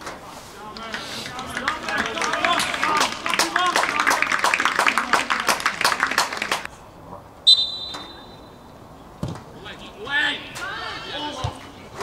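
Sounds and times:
voices: 0.0 - 6.7, 9.4 - 12.0
referee's whistle blast: 7.5 - 8.5.

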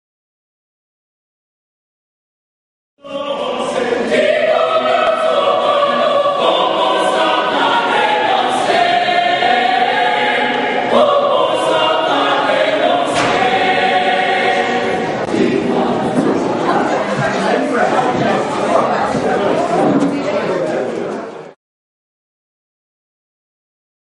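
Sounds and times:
choir singing: 3.0 - 19.4.

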